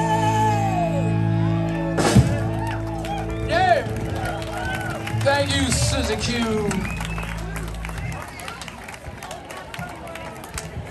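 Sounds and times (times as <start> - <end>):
crowd talking and chatter: 0.0 - 10.9.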